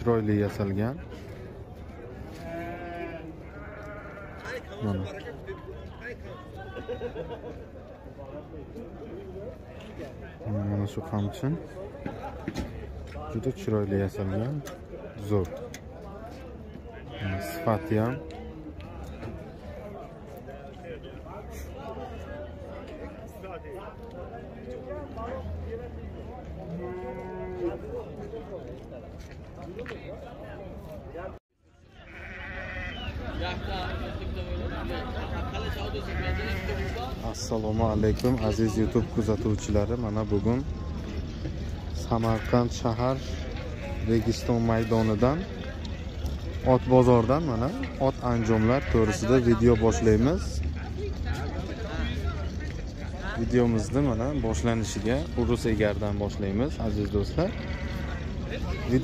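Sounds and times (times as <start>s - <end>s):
sheep bleating: 2.3s - 5.0s, 17.1s - 18.4s, 26.7s - 27.8s, 32.0s - 33.2s, 35.9s - 37.2s, 42.2s - 44.2s, 48.0s - 49.6s, 57.1s - 58.4s.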